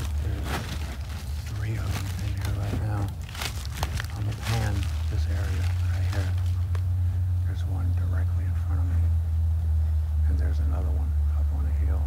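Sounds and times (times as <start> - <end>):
muffled voices speaking low: 0.0 - 9.2, 10.2 - 12.0
steady low rumble: 0.0 - 12.0.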